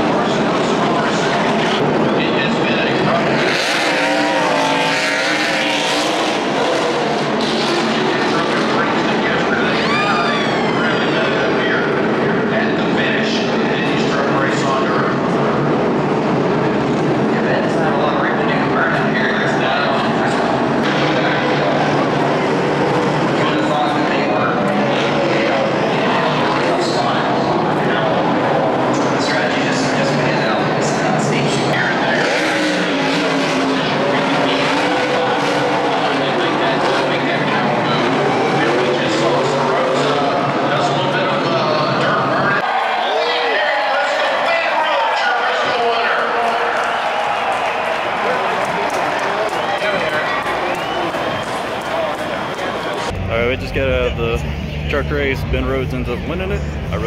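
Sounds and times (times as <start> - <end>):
race truck engines: 0.0 - 57.0
engine note climbing: 47.6 - 57.0.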